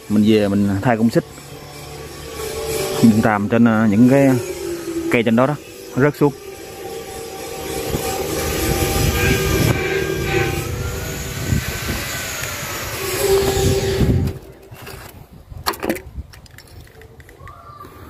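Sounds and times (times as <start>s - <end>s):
machine engine running: 0.0s - 14.7s.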